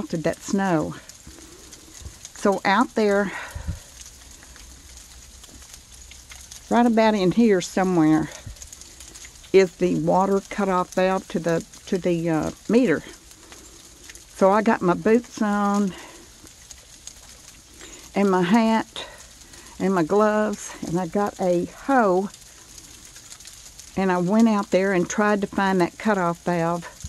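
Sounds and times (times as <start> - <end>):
faint ticks: 0.9 - 2.7, 3.3 - 18.2, 19.0 - 24.8.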